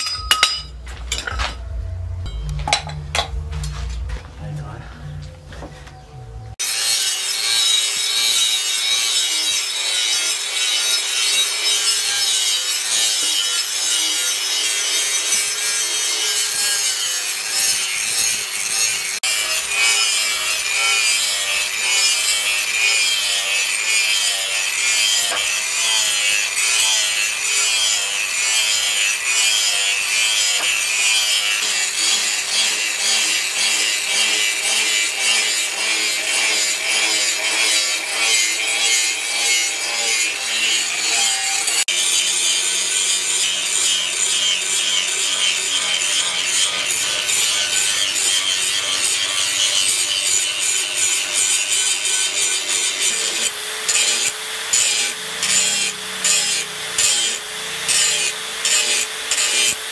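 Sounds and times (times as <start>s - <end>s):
angle grinder grinding steel: 0.0s - 5.4s, 6.0s - 59.9s.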